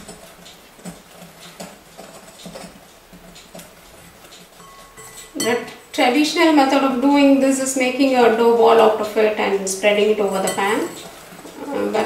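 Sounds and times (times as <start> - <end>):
whisk tapping a glass bowl: 4.5 - 6.6, 10.0 - 11.2.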